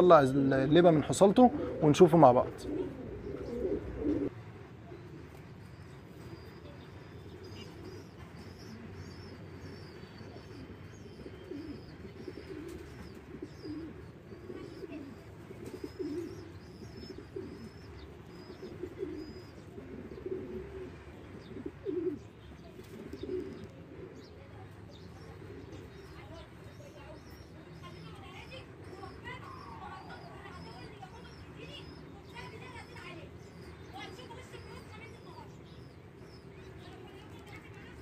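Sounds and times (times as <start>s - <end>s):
pigeons cooing: 0.0s - 38.0s.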